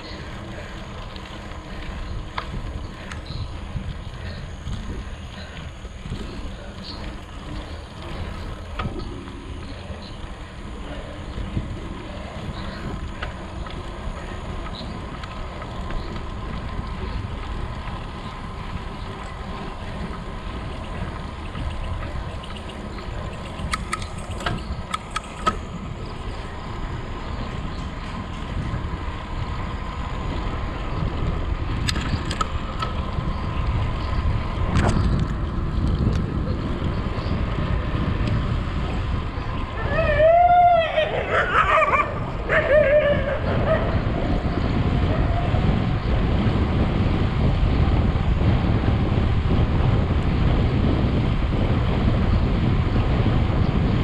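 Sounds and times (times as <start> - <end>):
bicycle road noise: 0.0 - 54.0
wind rumble on microphone: 0.0 - 54.0
sharp clicks: 23.4 - 25.6.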